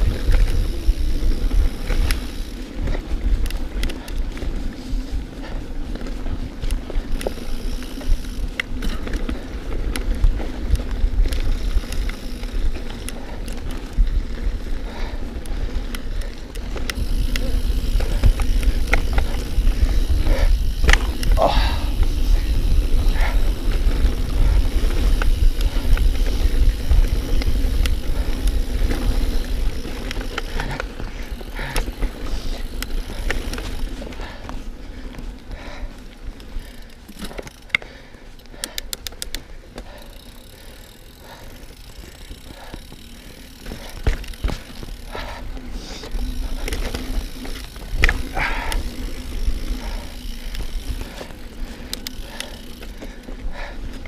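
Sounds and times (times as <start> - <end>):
bike rattling over bumps: 0.0 - 54.0
rapid ticks: 0.0 - 54.0
rushing air and tyre noise: 0.0 - 54.0.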